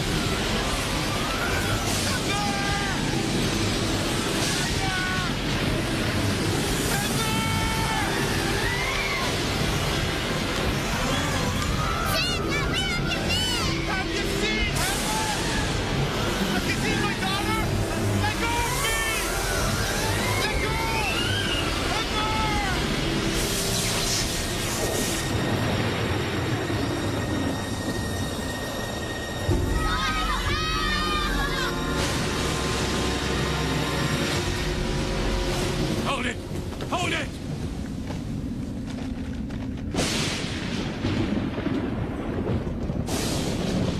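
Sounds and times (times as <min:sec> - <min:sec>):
deep rumbling: 0:00.0 - 0:43.9
dense rushing noise: 0:00.0 - 0:43.9
hissing whoosh: 0:14.6 - 0:29.8.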